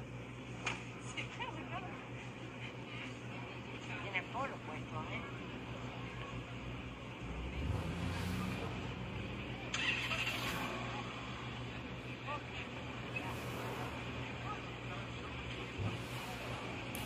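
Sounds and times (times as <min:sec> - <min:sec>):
car engine idling: 0:06.0 - 0:17.0.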